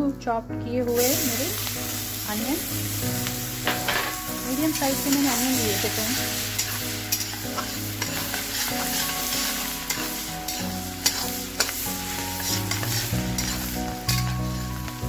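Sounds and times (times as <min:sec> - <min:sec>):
onions sizzling in oil: 0:00.9 - 0:15.0
spatula knocking and scraping pan: 0:03.6 - 0:04.3, 0:06.6 - 0:14.4.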